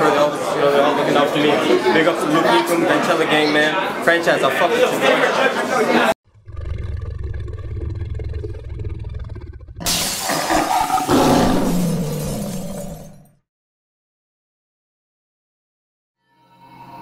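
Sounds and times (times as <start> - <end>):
deep rumble: 6.3 - 9.9
lion's roar: 6.3 - 13.3.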